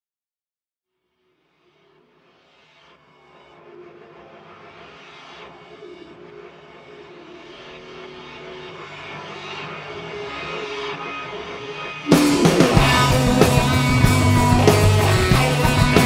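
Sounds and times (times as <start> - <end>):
experimental rock droning tones: 1.8 - 16.0.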